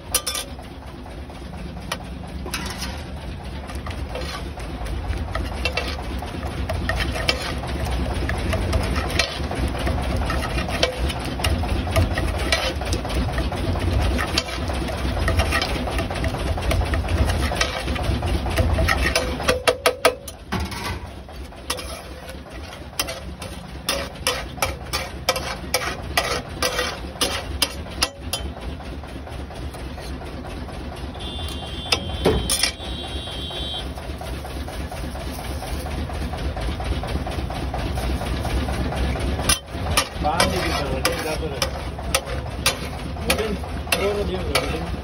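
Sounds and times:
metal masher clacking on iron griddle: 0:00.0 - 0:00.6, 0:01.8 - 0:28.6, 0:38.7 - 0:45.0.

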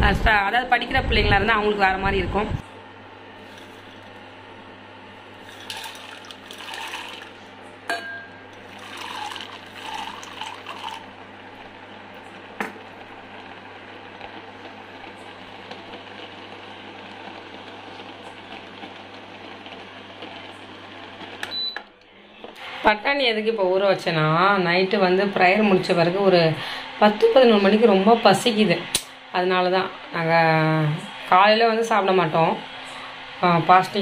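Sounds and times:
steady low hum: 0:00.0 - 0:21.1.

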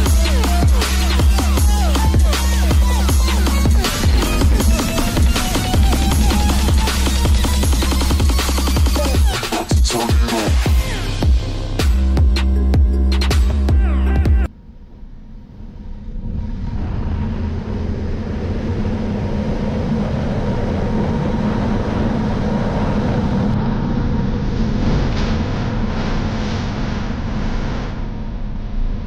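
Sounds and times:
motorcycle engine running: 0:00.0 - 0:09.4
music: 0:00.0 - 0:16.8
wind rushing: 0:02.1 - 0:09.6, 0:15.2 - 0:29.0.

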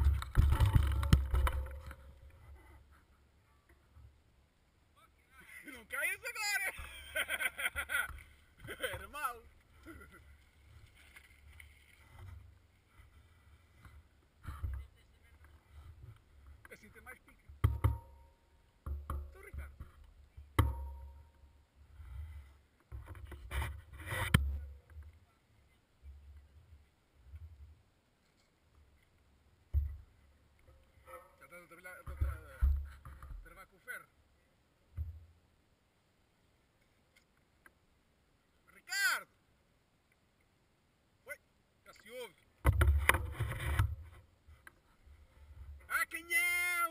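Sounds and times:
sharp knocks: 0:17.6 - 0:20.0, 0:42.6 - 0:43.9.

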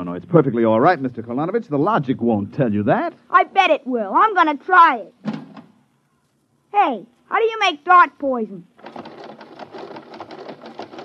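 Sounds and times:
rapid mechanical clicking clatter: 0:08.8 - 0:11.0.

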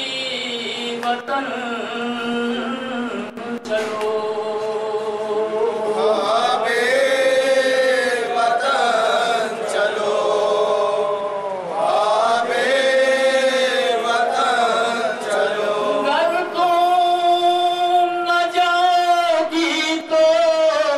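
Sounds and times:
man chanting a lament: 0:00.0 - 0:20.9
group of men chanting: 0:04.0 - 0:20.9.

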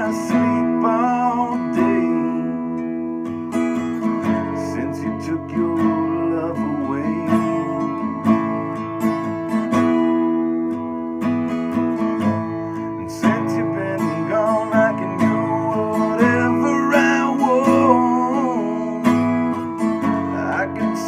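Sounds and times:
man singing: 0:00.0 - 0:09.3, 0:11.9 - 0:21.0
acoustic guitar strumming: 0:00.0 - 0:21.0.

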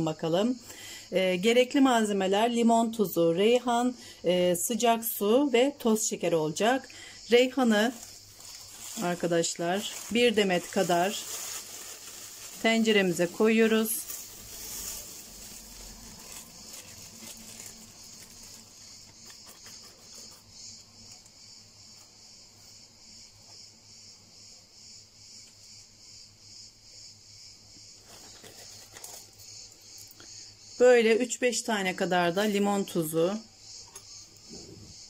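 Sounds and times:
insect chirping: 0:00.0 - 0:35.0
rustling of dried leaves: 0:07.3 - 0:21.1
plastic bag rustling: 0:07.4 - 0:20.4.

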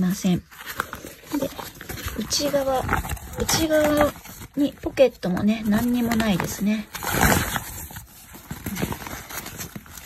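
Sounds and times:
nylon bag rustling: 0:00.0 - 0:10.0.

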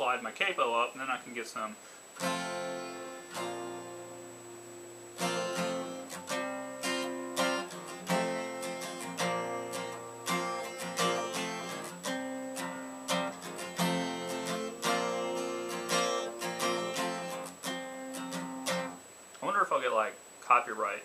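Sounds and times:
acoustic guitar strummed chords: 0:02.2 - 0:19.1.

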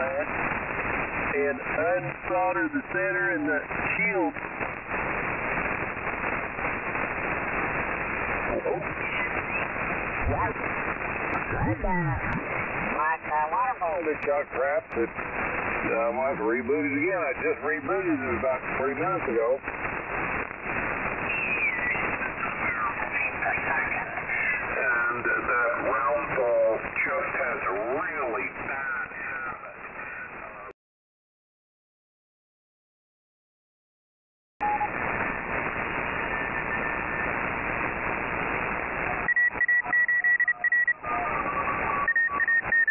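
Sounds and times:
radio hiss and static: 0:00.0 - 0:30.8, 0:34.6 - 0:42.9
person speaking over radio: 0:01.3 - 0:04.4, 0:10.2 - 0:10.6, 0:11.4 - 0:15.2, 0:15.8 - 0:19.6, 0:23.1 - 0:30.4
radio voices sliding in pitch: 0:08.4 - 0:19.5, 0:39.1 - 0:42.9.

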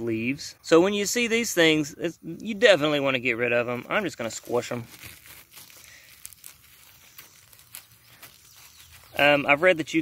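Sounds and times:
thumb rubbing on leaf: 0:03.6 - 0:10.0
small crackles of crushed eggs: 0:04.1 - 0:09.4.

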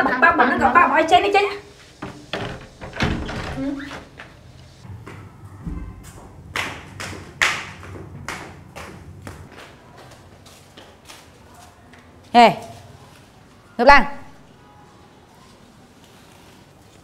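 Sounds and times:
footsteps on tiled floor: 0:03.5 - 0:13.6.

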